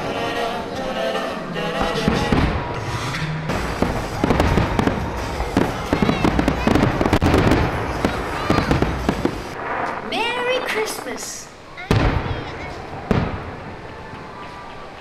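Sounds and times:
fireworks bangs and crackles: 1.8s - 14.6s
firework shells bursting: 2.0s - 12.4s.

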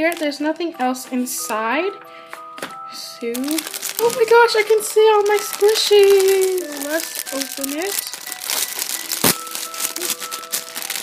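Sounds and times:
plastic bag crinkling: 0.0s - 1.5s, 3.2s - 11.0s.

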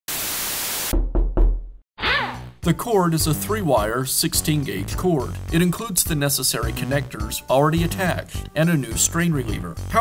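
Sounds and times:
deep thumps: 1.0s - 1.8s.

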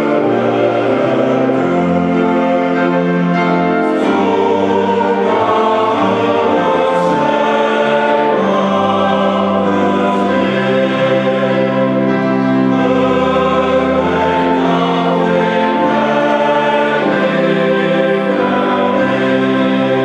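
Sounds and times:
male choir singing a hymn: 0.0s - 20.0s
organ: 0.0s - 20.0s.

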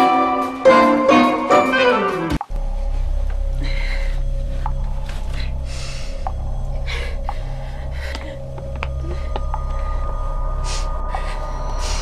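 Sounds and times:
steady low drone: 2.3s - 12.0s.

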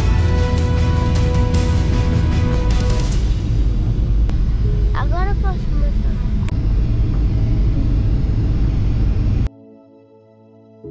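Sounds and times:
soft music: 0.0s - 3.3s, 4.3s - 6.5s, 7.5s - 10.9s
airliner cabin rumble: 2.0s - 9.5s.

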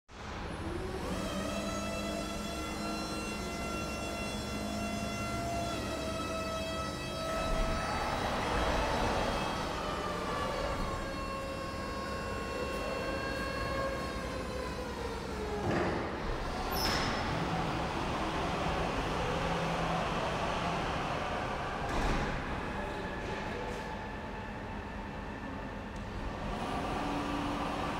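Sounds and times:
forklift hydraulic pump whining: 0.2s - 27.9s
brief high squeak: 16.6s - 17.3s.

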